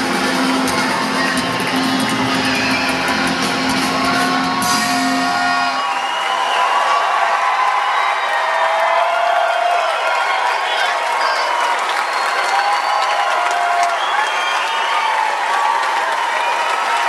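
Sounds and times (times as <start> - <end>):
rock band chord: 0.0 - 5.8
crowd cheering: 0.0 - 17.0.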